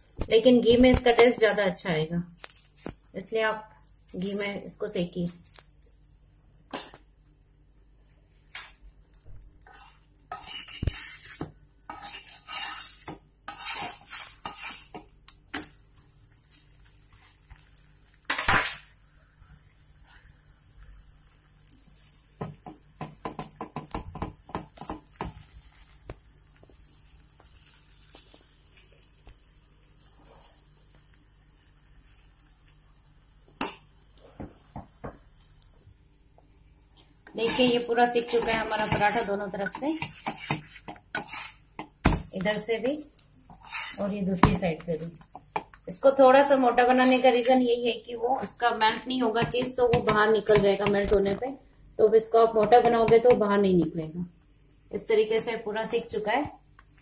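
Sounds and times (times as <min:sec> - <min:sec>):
spoon scraping on iron griddle: 0:09.6 - 0:18.8, 0:21.3 - 0:26.1, 0:37.0 - 0:45.7, 0:46.6 - 0:47.8.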